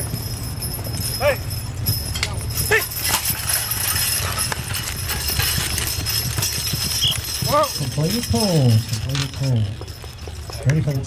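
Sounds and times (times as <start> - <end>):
mule hooves plodding: 0.0 - 11.0
sled dragging across dirt: 0.0 - 11.0.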